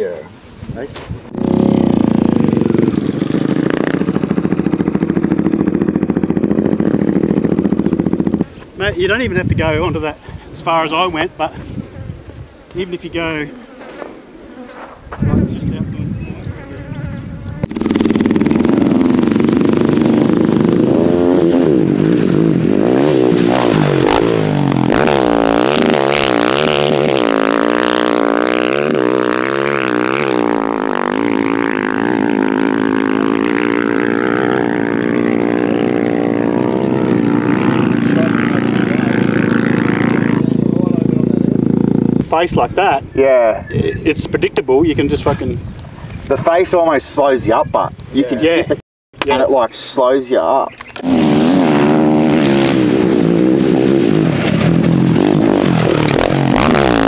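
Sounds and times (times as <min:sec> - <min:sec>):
dirt bike engine revving: 0:01.1 - 0:42.5, 0:50.5 - 0:57.0.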